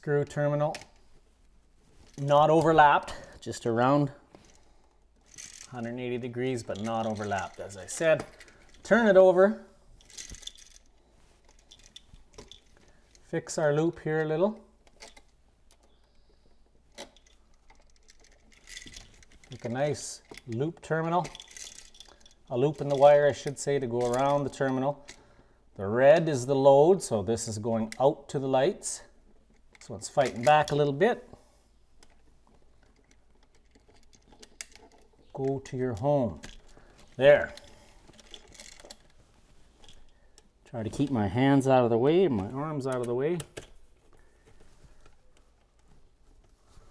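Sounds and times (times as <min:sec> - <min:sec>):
hands handling switch and wires: 0:00.2 - 0:03.5, 0:04.3 - 0:25.3, 0:29.2 - 0:31.2, 0:31.9 - 0:41.2, 0:42.3 - 0:46.9.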